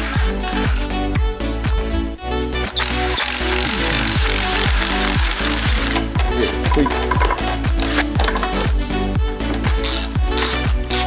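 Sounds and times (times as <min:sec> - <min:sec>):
cordless impact wrench hammering: 0:02.8 - 0:08.6.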